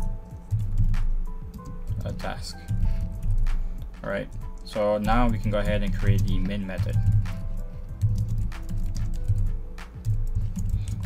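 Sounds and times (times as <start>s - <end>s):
background music: 0.0s - 11.0s
keyboard typing clicks: 0.0s - 11.0s.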